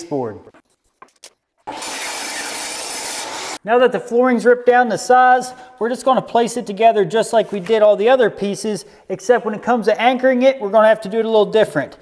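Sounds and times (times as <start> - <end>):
table saw cutting wood: 1.6 - 3.6.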